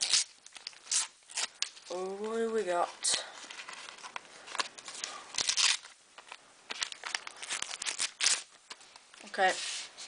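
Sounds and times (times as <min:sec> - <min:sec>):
packet tearing: 0:00.0 - 0:02.0, 0:03.0 - 0:06.0, 0:06.7 - 0:08.7.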